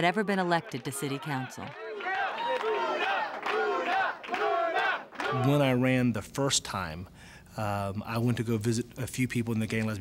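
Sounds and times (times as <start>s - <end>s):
crowd shouting and cheering: 0.0s - 5.7s.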